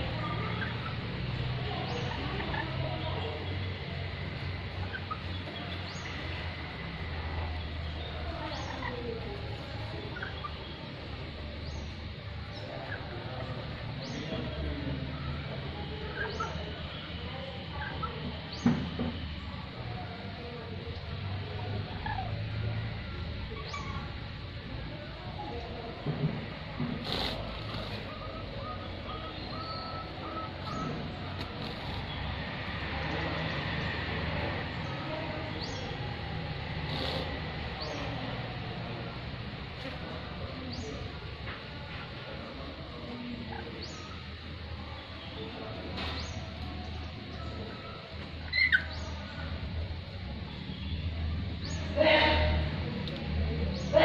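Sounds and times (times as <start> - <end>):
birds squeaky calls: 0.2 - 6.4, 7.6 - 18.7, 21.8 - 24.4, 27.0 - 33.6, 36.8 - 38.6, 45.9 - 49.6
lorikeet shrill call: 27.1 - 31.0.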